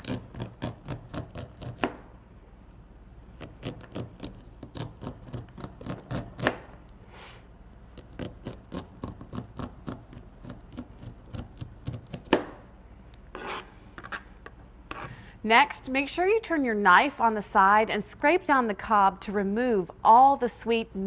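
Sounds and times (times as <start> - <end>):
knife cutting corn on cutting board: 0.0 - 2.0, 3.4 - 6.7, 7.9 - 12.5.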